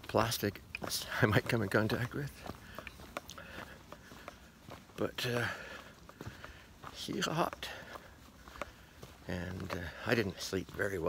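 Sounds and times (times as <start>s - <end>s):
footsteps on dirt and rock: 0.0s - 11.0s.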